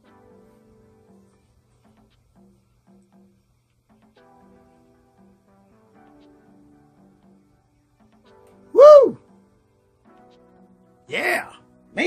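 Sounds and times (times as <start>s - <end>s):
faint metal music from headphones: 0.0s - 12.0s
man hooting exclamation: 8.8s - 9.2s.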